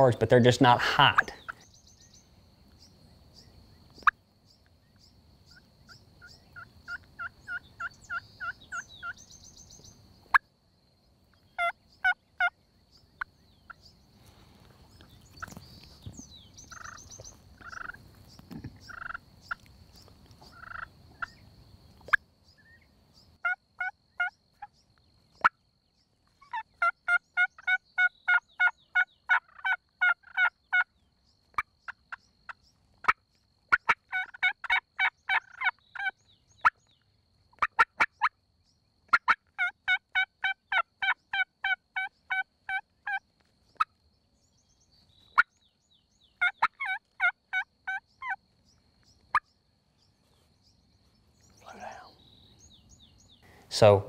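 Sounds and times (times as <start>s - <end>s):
turkeys gobbling: 0.7s - 1.6s, 11.6s - 12.6s, 16.7s - 18.0s, 18.7s - 19.7s, 20.4s - 21.4s, 23.4s - 24.4s, 26.5s - 30.9s, 33.0s - 36.8s, 37.6s - 38.1s, 39.1s - 43.2s, 46.4s - 48.4s.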